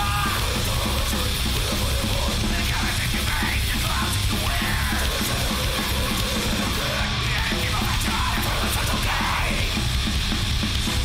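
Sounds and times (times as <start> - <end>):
person yelling vocals: 0.0 - 0.6, 2.8 - 5.2
loud fast punk band: 0.0 - 11.0.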